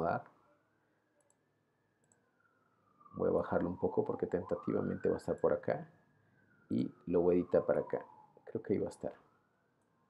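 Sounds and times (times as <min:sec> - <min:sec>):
faint computer mouse clicks: 0:02.0 - 0:02.2.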